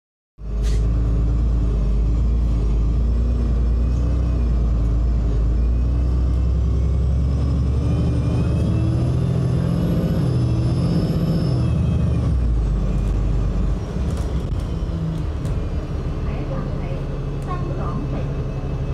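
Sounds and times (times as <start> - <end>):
bus engine running: 0.4 - 18.9
high drivetrain whine: 0.4 - 18.9.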